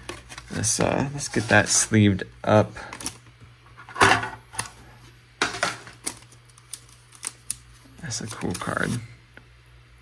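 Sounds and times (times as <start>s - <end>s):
card sliding into plastic sleeve: 5.8s - 9.1s.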